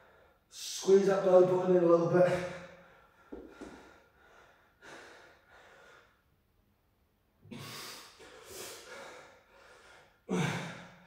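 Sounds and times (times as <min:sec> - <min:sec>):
man breathing hard: 0:02.4 - 0:06.3, 0:07.5 - 0:11.0.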